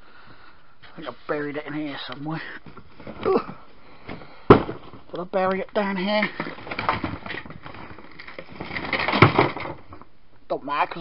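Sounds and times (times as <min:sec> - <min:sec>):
rustling and clattering of cables: 0:01.9 - 0:10.2.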